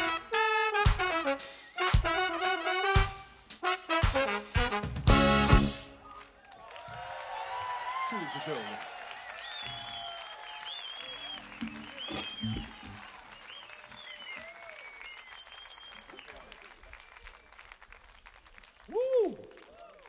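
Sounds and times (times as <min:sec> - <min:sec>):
audience applauding: 0:05.9 - 0:20.0
crowd shouting and whooping: 0:06.0 - 0:15.1.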